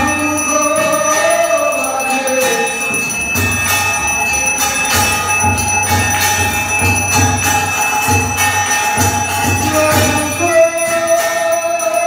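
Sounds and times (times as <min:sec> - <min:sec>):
temple bells ringing: 0:00.0 - 0:12.0.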